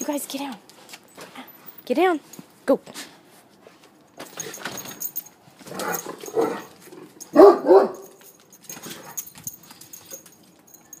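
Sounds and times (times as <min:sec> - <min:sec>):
dog barking: 0:07.3 - 0:08.2.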